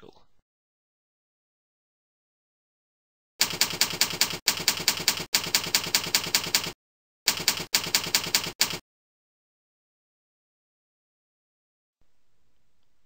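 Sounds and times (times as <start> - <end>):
keyboard typing: 3.4 - 8.8.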